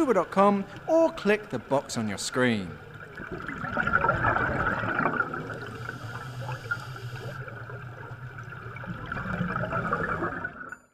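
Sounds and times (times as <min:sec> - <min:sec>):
underwater air bubbles gurgling: 0:02.7 - 0:10.8.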